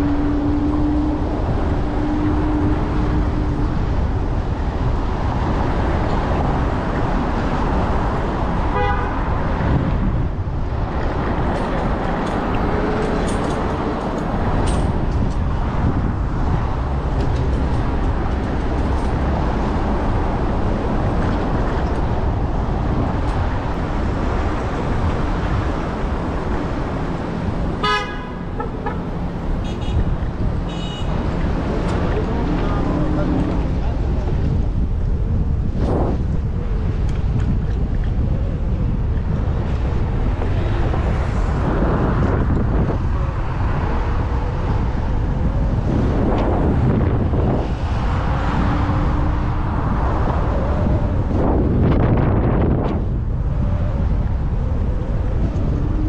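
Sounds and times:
city street traffic: 0.0 - 56.0
wind rumble on microphone: 0.0 - 56.0
car horn toot: 8.7 - 9.3, 27.8 - 30.1, 30.7 - 31.2.

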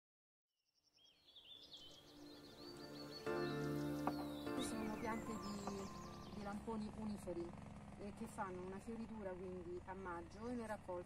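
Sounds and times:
faint birdsong: 0.7 - 10.8.

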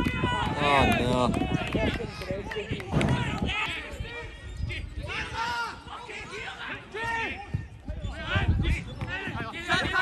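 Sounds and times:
people shouting: 5.0 - 10.0.

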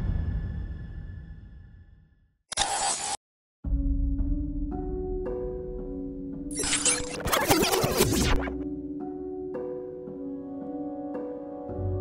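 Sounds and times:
static glitch noise burst: 6.5 - 8.6.

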